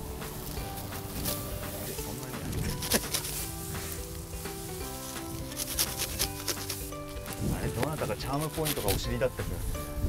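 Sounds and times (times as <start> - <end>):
sickle cutting dry stalks: 0.0 - 9.9
background music with held notes: 0.0 - 10.0.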